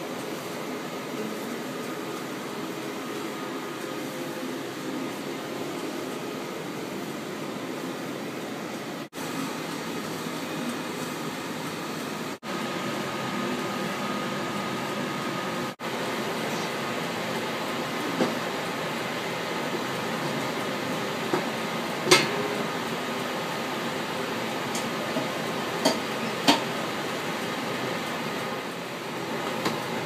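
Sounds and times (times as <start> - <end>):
film projection machinery running: 0.0 - 30.0.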